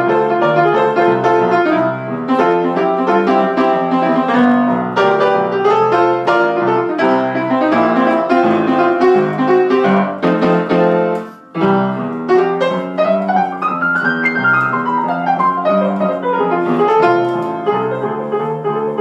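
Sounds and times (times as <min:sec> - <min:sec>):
rock piano playing: 0:00.0 - 0:19.0.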